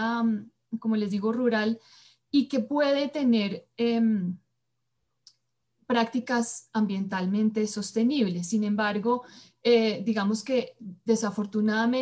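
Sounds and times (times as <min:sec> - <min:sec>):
woman speaking: 0:00.0 - 0:04.5, 0:05.9 - 0:12.0.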